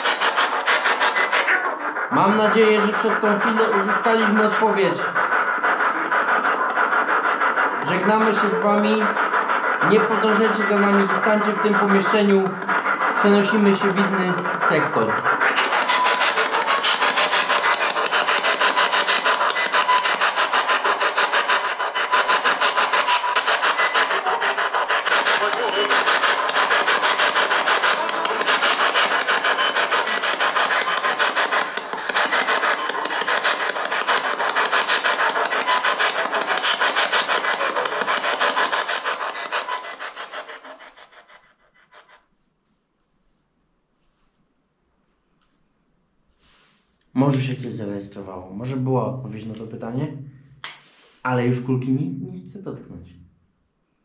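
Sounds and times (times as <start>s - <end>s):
radio scanning static: 0.0s - 42.2s
fragments of broadcast audio: 0.0s - 53.7s.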